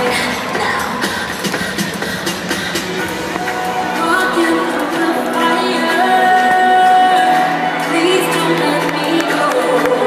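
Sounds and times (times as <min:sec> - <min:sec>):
crowd noise: 0:00.0 - 0:10.0
music: 0:00.0 - 0:10.0.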